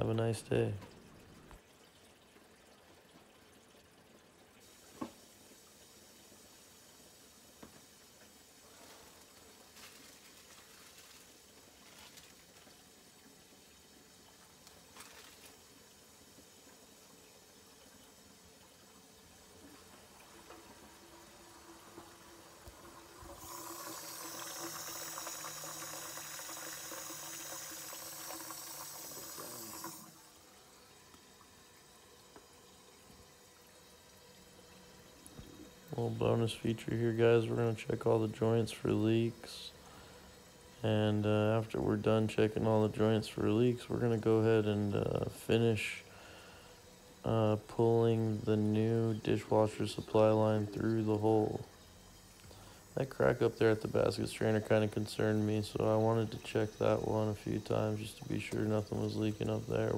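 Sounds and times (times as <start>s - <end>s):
water running in kitchen sink: 0.0s - 59.9s.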